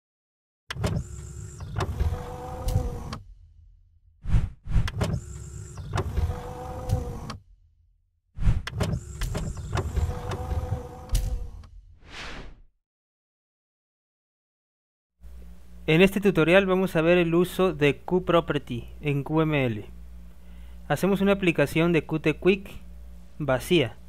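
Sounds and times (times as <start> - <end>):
mechanical whirring with whine: 0.7 - 3.5, 4.3 - 7.5, 8.4 - 11.8.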